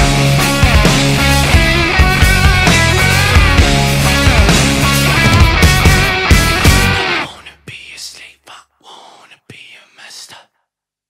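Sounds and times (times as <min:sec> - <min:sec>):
rock song: 0:00.0 - 0:07.4
whispered voice sounds: 0:07.2 - 0:10.6.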